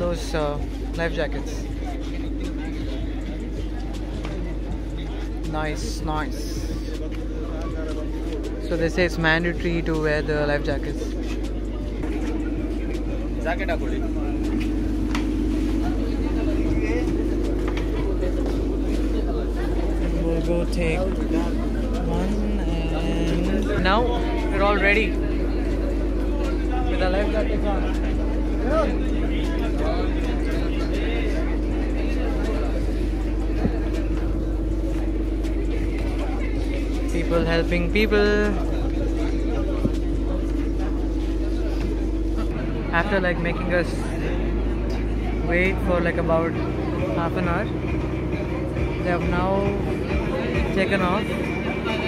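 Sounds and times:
boat engine idling: 0.0s - 52.0s
people chattering: 0.0s - 52.0s
people talking faintly: 11.0s - 37.7s, 38.4s - 52.0s.

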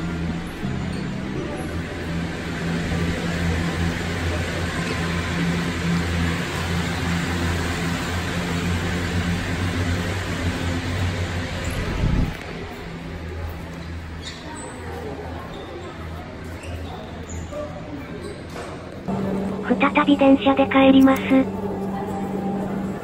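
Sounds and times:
cable car machinery hum: 0.0s - 14.2s, 19.0s - 23.0s.

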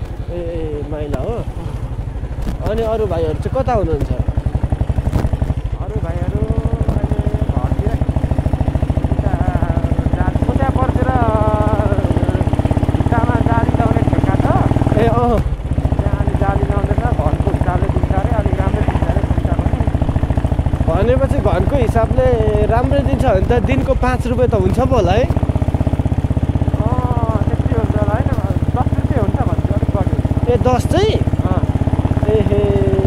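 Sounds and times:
motorcycle engine running: 0.0s - 33.0s.

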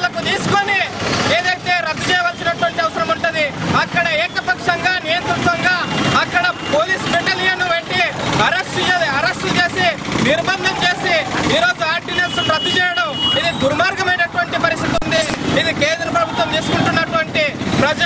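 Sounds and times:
man giving a loud speech: 0.0s - 18.0s.

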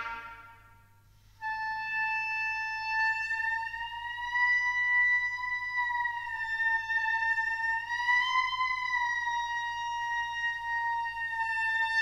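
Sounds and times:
oboe holding long note: 0.0s - 0.8s, 1.4s - 12.0s.

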